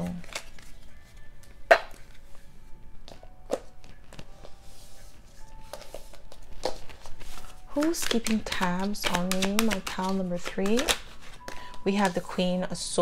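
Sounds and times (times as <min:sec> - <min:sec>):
faint music: 0:00.0 - 0:13.0
cards tapping on a table: 0:05.7 - 0:12.2.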